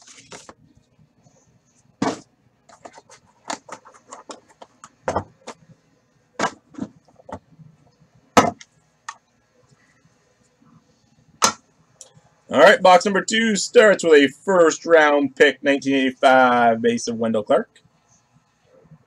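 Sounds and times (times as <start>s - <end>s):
card pack rustling: 0.0s - 0.6s.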